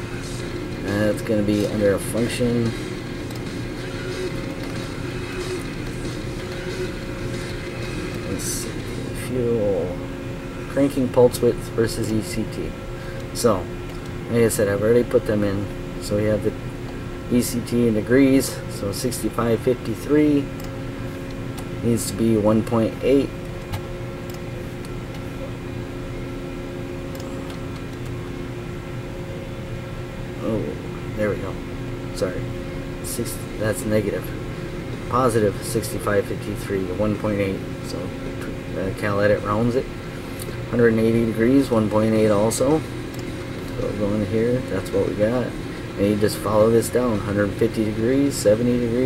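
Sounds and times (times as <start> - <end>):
low mechanical hum: 0.0 - 49.0.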